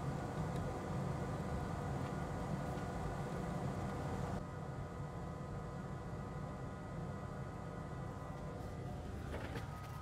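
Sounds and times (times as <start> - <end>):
faint steady tones: 0.0 - 10.0.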